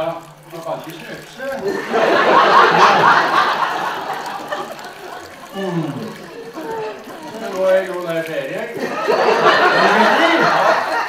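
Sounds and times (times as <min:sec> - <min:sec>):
actors speaking: 0:00.0 - 0:11.0
audience laughing: 0:01.6 - 0:08.0, 0:08.6 - 0:11.0.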